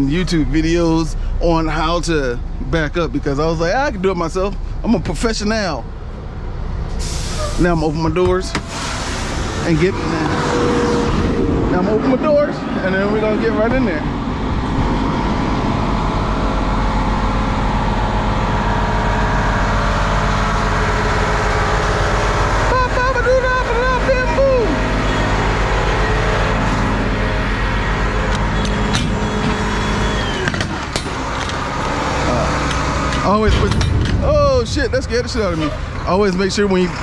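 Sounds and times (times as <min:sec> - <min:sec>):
diesel engine idling: 0:00.0 - 0:37.0.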